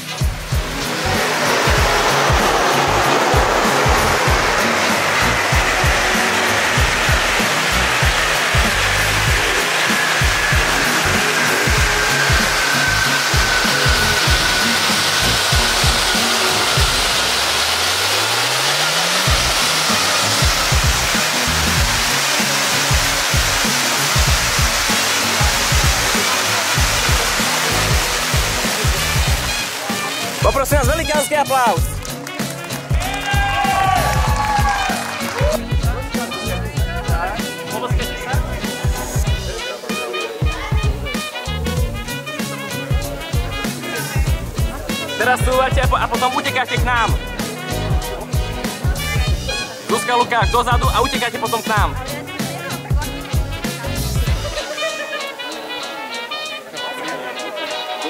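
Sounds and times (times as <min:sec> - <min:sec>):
background music with a beat: 0:00.0 - 0:58.0
spark fountains hissing: 0:00.0 - 0:58.0.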